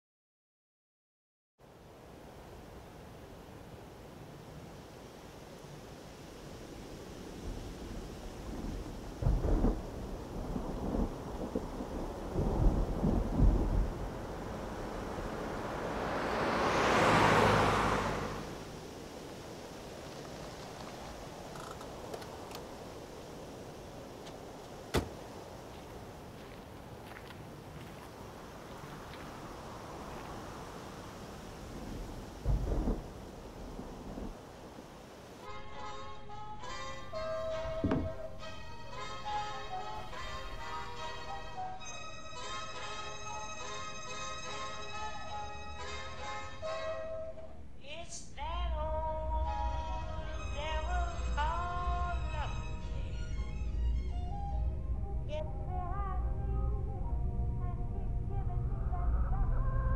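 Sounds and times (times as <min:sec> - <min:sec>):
steady outdoor hiss: 0:01.6 - 0:59.9
car passing on wet asphalt: 0:03.6 - 0:35.4
distant thunder rumble: 0:07.3 - 0:17.7, 0:18.4 - 0:35.0
low uneven rumble: 0:47.4 - 0:59.9.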